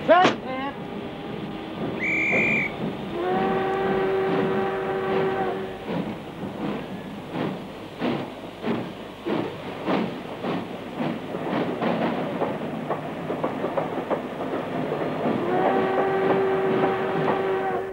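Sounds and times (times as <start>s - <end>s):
train wheels and engine beat: 0.0s - 17.9s
train whistle: 2.0s - 5.9s, 15.4s - 17.9s.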